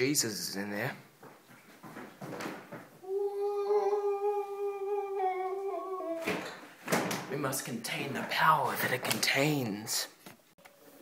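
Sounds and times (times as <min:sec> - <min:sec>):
person singing long note: 0:03.0 - 0:06.5.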